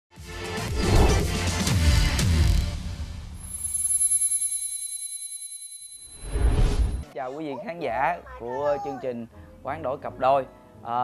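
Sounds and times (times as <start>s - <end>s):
high fast-pulsing ringing chime: 3.4s - 7.0s.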